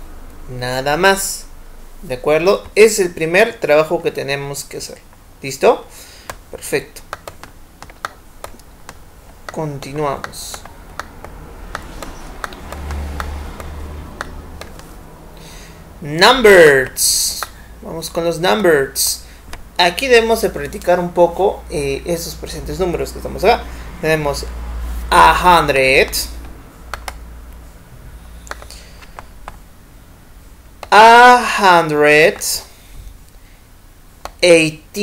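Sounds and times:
low electrical hum: 0:00.0 - 0:35.0
low hum: 0:06.4 - 0:18.4
computer mouse clicks: 0:07.0 - 0:15.0, 0:26.4 - 0:27.2, 0:28.4 - 0:29.6.

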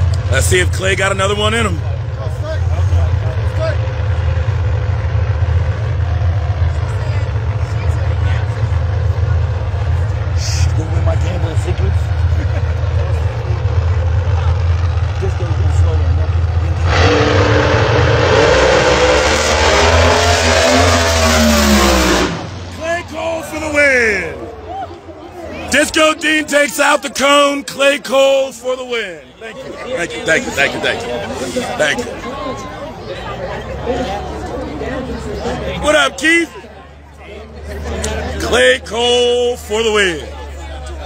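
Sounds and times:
drag car engines rumbling: 0:00.0 - 0:41.0
full-throttle car pass: 0:00.0 - 0:41.0.

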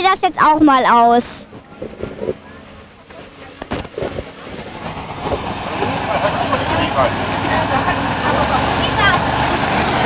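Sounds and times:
steady low hum: 0:00.3 - 0:09.5.

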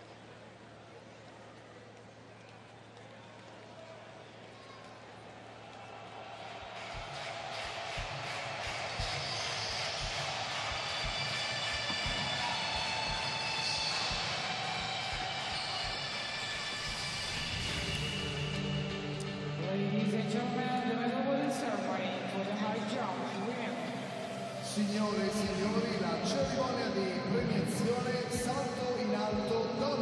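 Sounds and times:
music with steady beat: 0:06.7 - 0:19.6.

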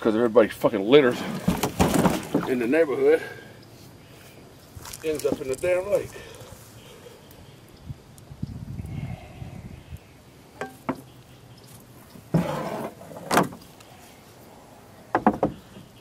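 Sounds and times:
paddle clunking against canoe hull: 0:01.1 - 0:02.7, 0:15.1 - 0:16.0.

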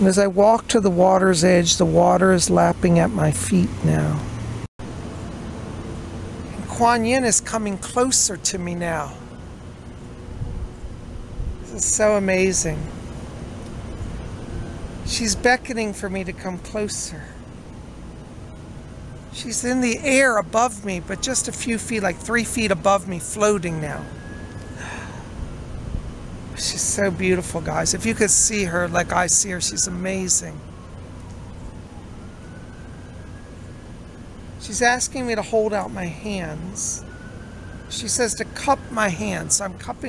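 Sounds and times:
low outdoor rumble: 0:00.0 - 0:40.0.

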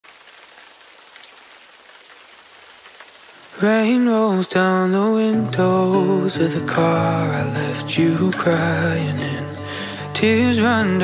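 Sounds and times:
steady rain falling: 0:00.0 - 0:07.8.

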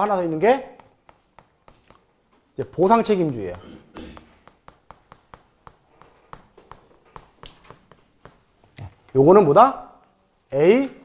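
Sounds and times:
chalk tapping on chalkboard: 0:00.0 - 0:09.2.

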